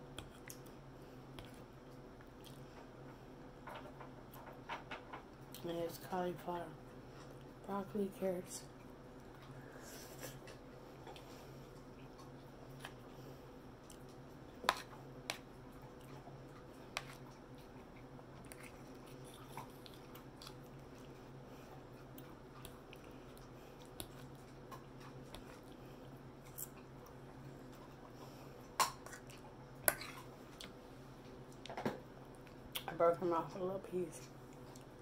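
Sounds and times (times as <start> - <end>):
low steady hum: 0.0 - 35.0
chewing: 10.2 - 13.0, 13.8 - 30.8, 34.5 - 34.9.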